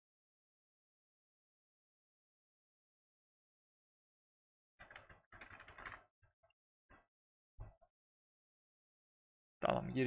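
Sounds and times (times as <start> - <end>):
typing on computer keyboard: 4.8 - 6.1.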